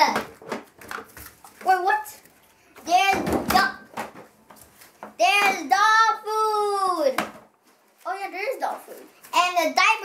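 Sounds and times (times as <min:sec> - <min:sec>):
child's voice: 0:00.0 - 0:00.3, 0:01.6 - 0:02.2, 0:02.8 - 0:03.9, 0:05.2 - 0:07.3, 0:08.0 - 0:10.0.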